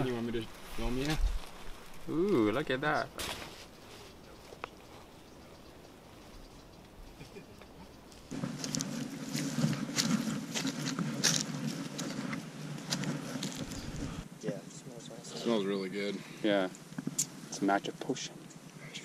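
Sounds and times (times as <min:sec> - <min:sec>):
footsteps on dirt trail: 0:00.0 - 0:14.3.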